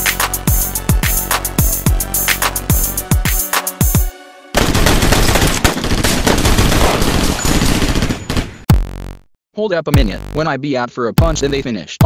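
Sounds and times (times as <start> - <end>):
music beat: 0.0 - 4.3, 8.7 - 9.3, 10.0 - 10.6, 11.2 - 11.7
rapid machine gun fire: 4.6 - 8.7.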